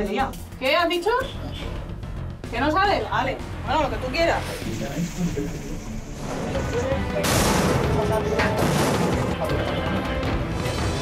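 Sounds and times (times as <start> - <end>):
background music: 0.0 - 11.0
loud crashing noise: 7.2 - 9.4.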